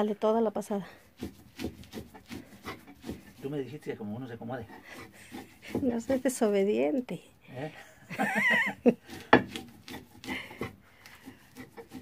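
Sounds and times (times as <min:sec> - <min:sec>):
stone scraping and crunching grain: 0:01.0 - 0:06.6, 0:08.9 - 0:12.0.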